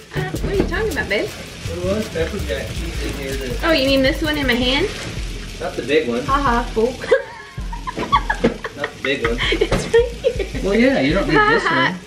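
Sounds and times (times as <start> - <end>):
woman laughing: 7.0 - 10.6.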